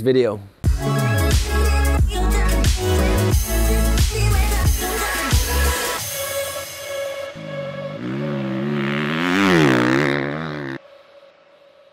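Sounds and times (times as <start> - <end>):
motorbike engine revving: 7.4 - 10.8.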